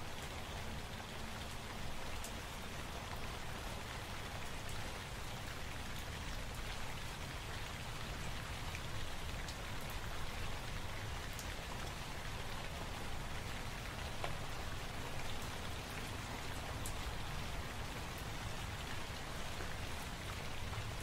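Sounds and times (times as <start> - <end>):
steady rain: 0.0 - 21.0.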